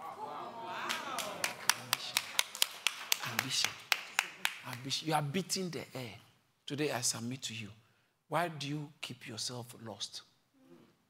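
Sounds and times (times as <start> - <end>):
rhythmic hand clapping: 0.9 - 5.1.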